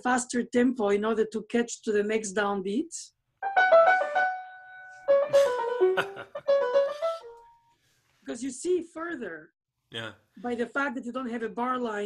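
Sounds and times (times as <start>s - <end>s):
piano playing quick notes: 3.4s - 7.5s.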